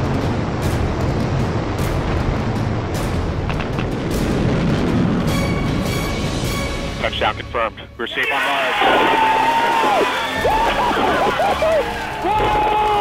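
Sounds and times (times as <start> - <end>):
dramatic music: 0.0 - 13.0
rocket thrusters roaring: 8.2 - 13.0.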